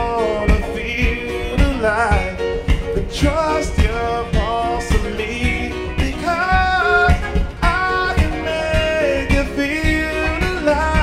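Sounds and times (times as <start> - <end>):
acoustic guitar strummed: 0.0 - 11.0
guitar body struck: 0.0 - 11.0
man singing: 0.0 - 11.0.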